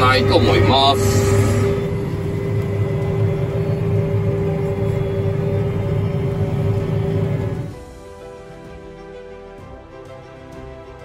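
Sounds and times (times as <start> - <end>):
tractor engine running: 0.0 - 8.0.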